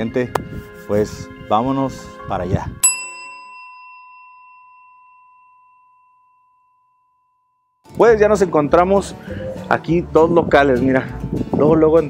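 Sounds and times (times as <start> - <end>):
bell-like chime ringing: 2.8 - 7.8.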